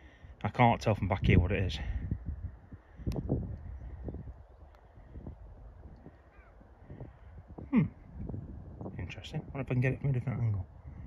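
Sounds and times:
bird harsh caw-like calls: 0:05.9 - 0:08.2.

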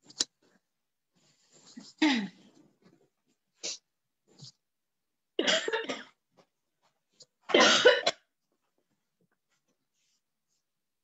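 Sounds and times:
person coughing: 0:02.0 - 0:02.4, 0:07.5 - 0:08.3.

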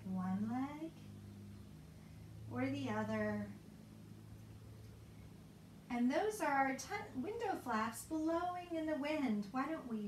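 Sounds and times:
woman's voice: 0:00.0 - 0:01.0, 0:02.5 - 0:03.6, 0:05.9 - 0:10.0.

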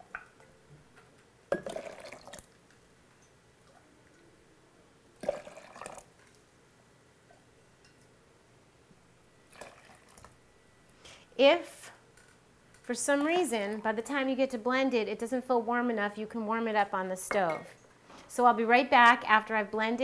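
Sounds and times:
tea pouring into blender jar: 0:05.2 - 0:06.1, 0:09.5 - 0:10.3.

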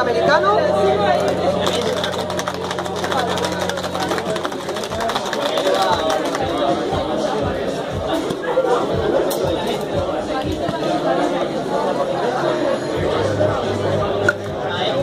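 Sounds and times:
background music: 0:00.0 - 0:15.0
crowd chatter: 0:00.0 - 0:15.0
cocktail shaker rattling ice: 0:01.6 - 0:06.6.

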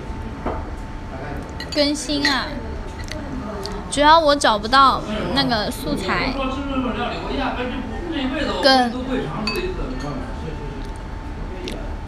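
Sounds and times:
tableware clink: 0:01.5 - 0:03.2, 0:09.4 - 0:10.3.

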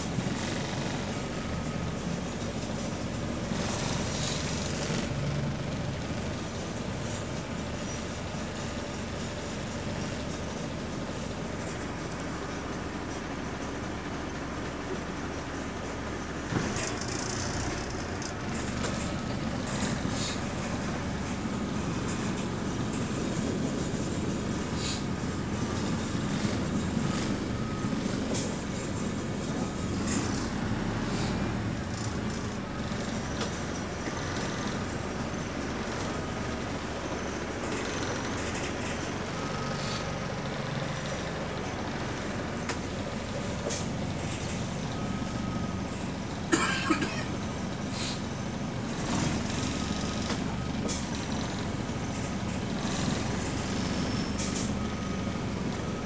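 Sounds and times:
bus engine and road noise: 0:00.0 - 0:56.0.

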